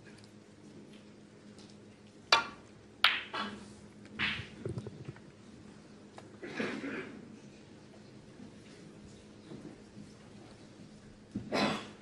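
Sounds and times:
cue striking ball click: 0:02.3 - 0:03.5, 0:04.2 - 0:04.8.

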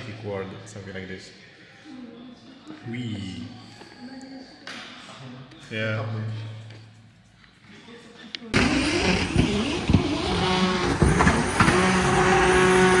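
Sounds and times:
car engine revving: 0:08.6 - 0:13.0.

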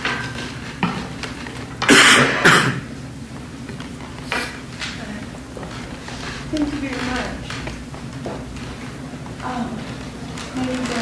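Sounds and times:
person clearing throat: 0:01.8 - 0:02.9.

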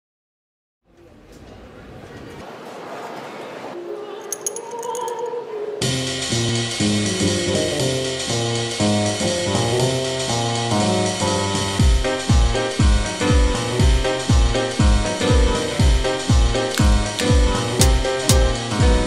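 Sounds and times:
swing music with bass: 0:05.8 - 0:19.0.

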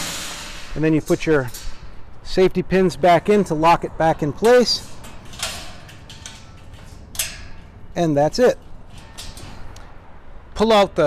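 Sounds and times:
metal pin scraping in hole: 0:04.8 - 0:07.8, 0:08.6 - 0:09.8.

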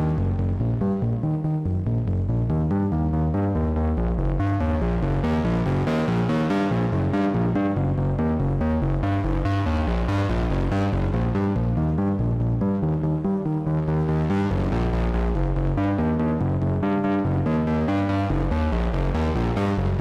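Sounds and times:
synthesizer stepping notes: 0:00.0 - 0:20.0.

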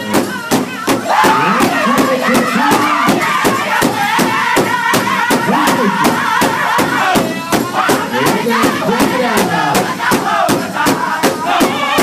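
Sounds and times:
group singing in unison: 0:00.0 - 0:12.0
large drum beating: 0:00.0 - 0:12.0.

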